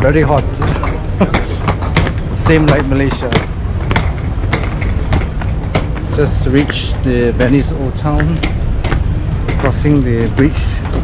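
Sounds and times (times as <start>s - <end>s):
footsteps on stone steps: 0.0s - 11.0s
wind rumble on microphone: 0.0s - 11.0s.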